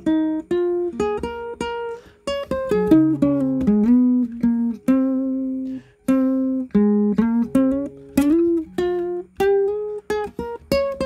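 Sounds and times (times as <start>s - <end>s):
guitar picking single notes: 0.0s - 11.0s.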